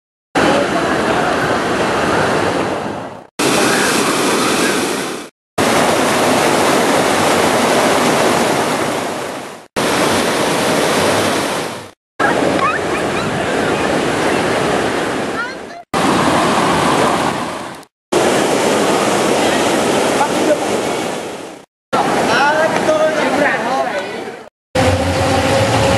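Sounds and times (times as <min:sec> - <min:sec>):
water rushing over waterfall: 0:00.4 - 0:23.5.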